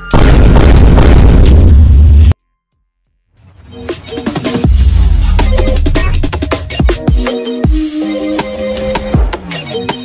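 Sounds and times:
boom and rumble: 0.1s - 2.3s.

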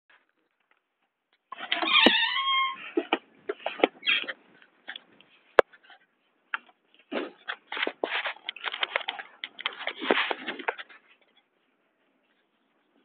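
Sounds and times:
rustling handling noise: 2.8s - 13.0s.

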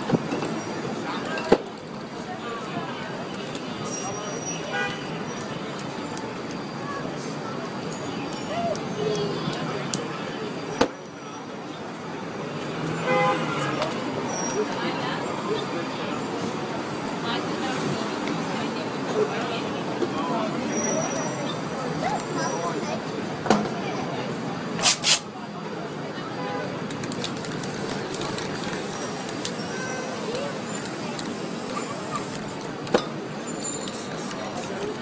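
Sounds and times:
street traffic noise: 0.0s - 35.0s
vehicle horn toot: 13.0s - 13.8s
spray can hissing: 24.8s - 25.3s, 27.1s - 29.6s, 30.5s - 32.6s, 33.8s - 34.8s.

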